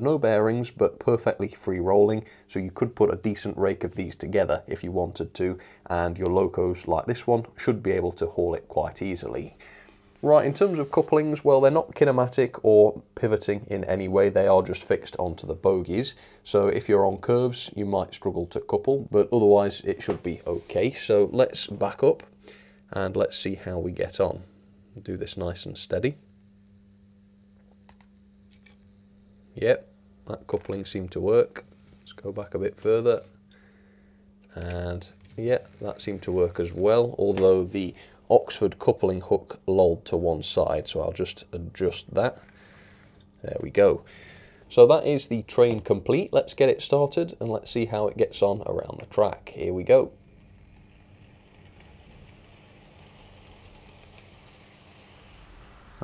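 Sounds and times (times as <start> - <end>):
model locomotive humming: 50.2 - 56.0
wheels rolling on track: 50.6 - 56.0.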